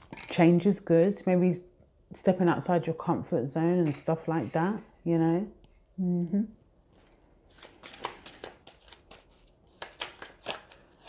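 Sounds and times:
card snaps and rustles: 7.6s - 11.0s.

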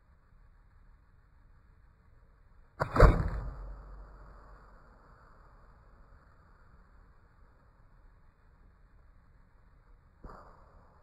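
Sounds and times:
suppressed rifle shot: 2.8s - 4.8s.

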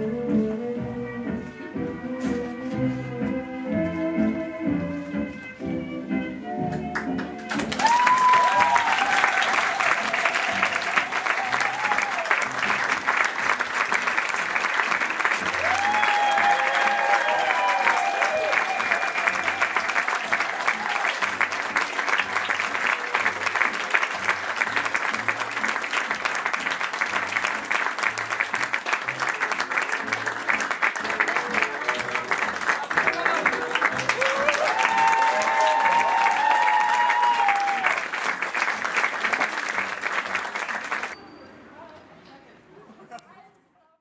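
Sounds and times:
audience applauding: 6.7s - 41.2s.

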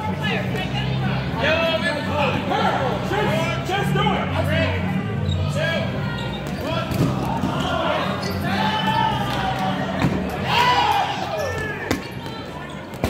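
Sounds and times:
players shouting: 1.5s - 12.7s.

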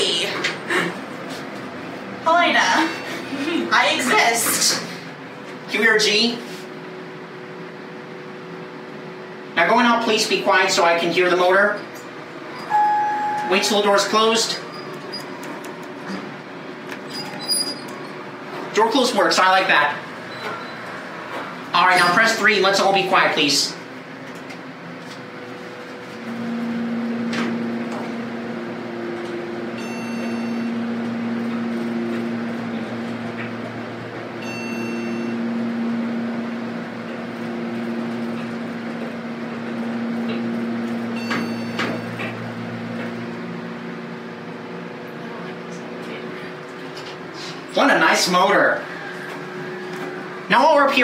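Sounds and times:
elevator car hum: 0.0s - 51.0s
short high electronic beeps: 12.6s - 13.6s, 29.8s - 30.9s, 34.4s - 35.5s.

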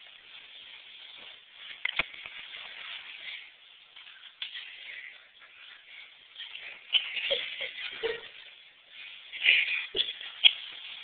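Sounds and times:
rustling and handling noise: 0.0s - 11.0s.

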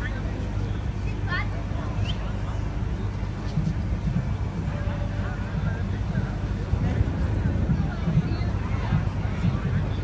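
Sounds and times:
faint voices of onlookers: 0.0s - 10.0s
low engine rumble: 0.0s - 10.0s.

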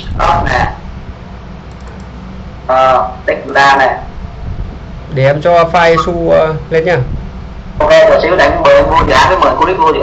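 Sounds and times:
low phone line hum: 0.0s - 10.0s.

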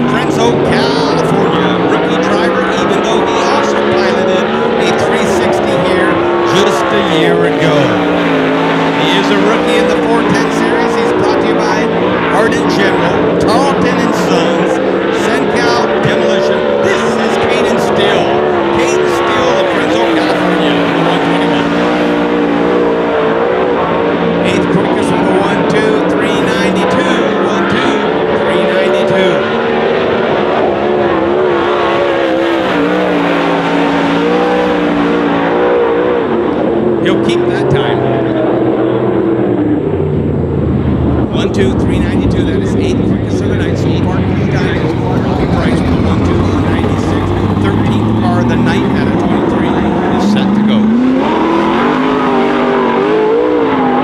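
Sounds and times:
racing car engine revving: 0.0s - 54.0s.

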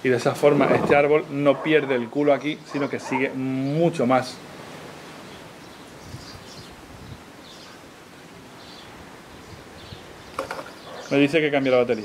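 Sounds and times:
distant bird chirps: 0.0s - 3.9s, 5.0s - 11.8s
steady background hiss: 0.0s - 12.0s.

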